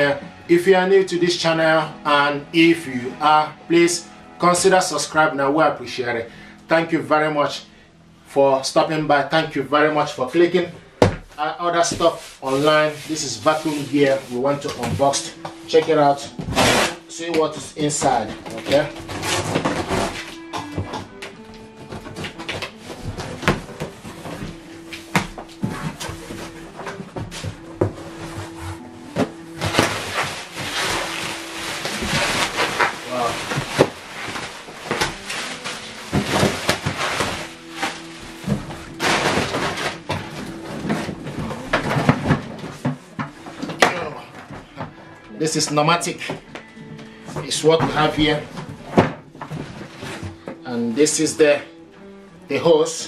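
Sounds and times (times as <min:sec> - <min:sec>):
background music held notes: 0:00.0 - 0:53.0
plastic wrapping rustling: 0:10.4 - 0:50.6
cardboard flaps knocking: 0:11.0 - 0:11.3, 0:18.2 - 0:44.9
packing tape being slit: 0:16.4 - 0:17.1, 0:18.2 - 0:42.7.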